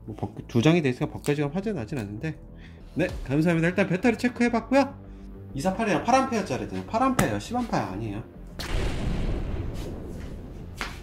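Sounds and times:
explosion blast: 8.6s - 10.8s.

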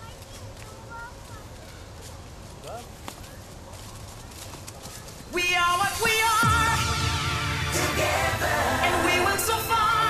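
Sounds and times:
horse hooves walking on leaves: 0.0s - 6.4s
song with singing: 5.3s - 10.0s.

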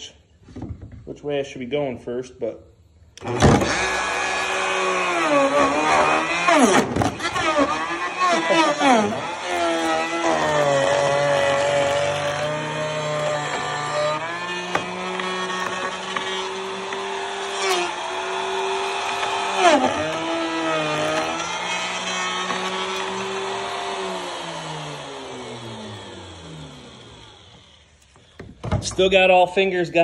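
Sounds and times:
router cutting wood: 3.2s - 29.2s.

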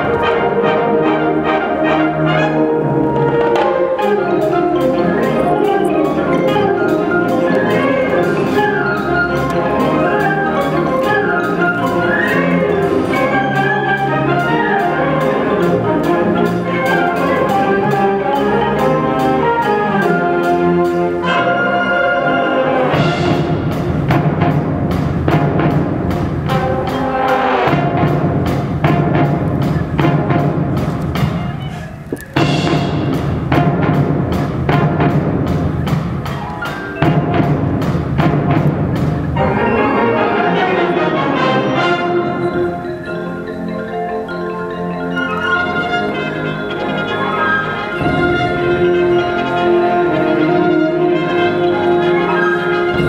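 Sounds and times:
flutes and woodwinds: 0.0s - 33.8s, 34.7s - 53.0s
concert band playing fast: 0.0s - 53.0s
driving percussion beat: 1.8s - 53.0s.

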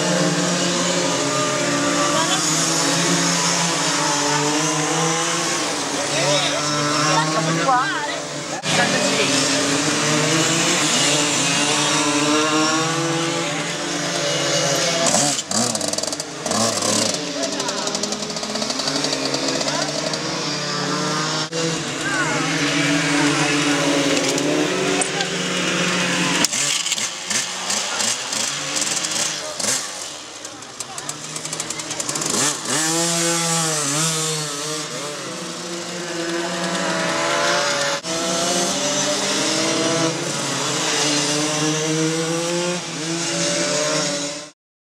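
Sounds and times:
mini motorcycle engines revving: 0.0s - 44.6s.

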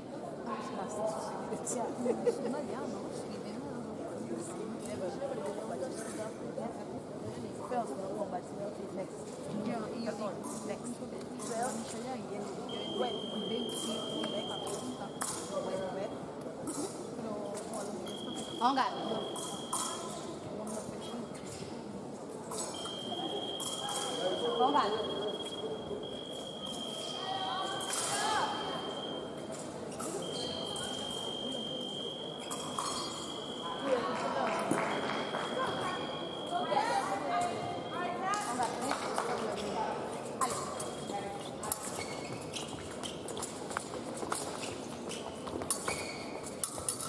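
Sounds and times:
indistinct voices in a hall: 0.0s - 47.0s
high electronic beep: 18.0s - 20.0s, 22.5s - 29.4s, 30.2s - 34.1s.

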